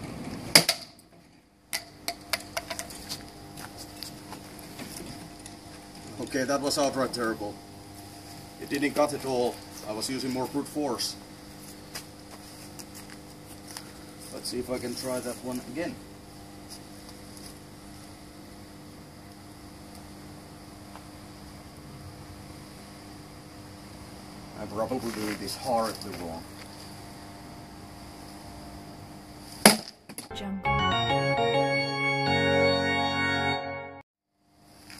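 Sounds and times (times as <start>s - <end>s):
faint background hum: 0.0s - 30.2s.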